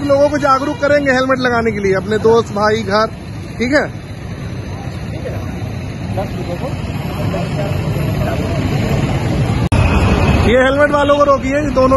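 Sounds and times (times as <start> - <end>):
faint voices: 0.0 - 11.9
street noise: 0.0 - 11.9.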